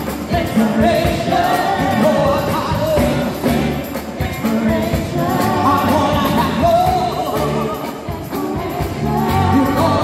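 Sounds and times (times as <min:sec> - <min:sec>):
live band playing: 0:00.0 - 0:10.0
woman singing: 0:04.2 - 0:10.0.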